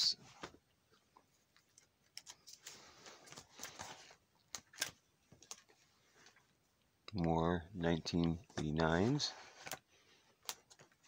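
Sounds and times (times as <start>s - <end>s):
plastic pages rustling: 1.5s - 6.6s, 8.1s - 11.0s.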